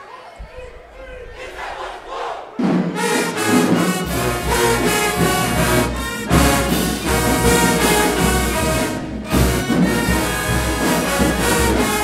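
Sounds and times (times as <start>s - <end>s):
crowd shouting: 0.0s - 4.4s
marching band brass: 1.4s - 12.0s.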